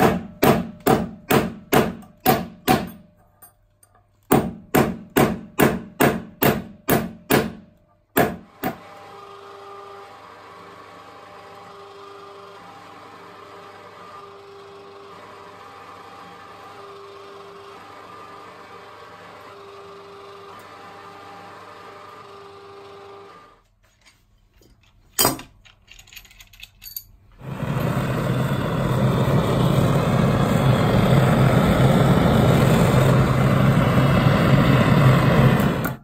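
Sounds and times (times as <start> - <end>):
hammer striking metal bar: 0.0 - 3.1, 4.3 - 7.6
rolling mill humming and whining: 27.4 - 36.0.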